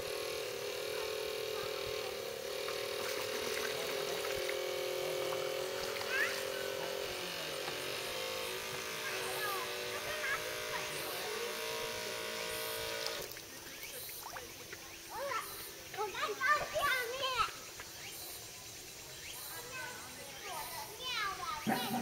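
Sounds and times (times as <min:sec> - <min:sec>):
small electric motor whining: 0:00.0 - 0:14.2.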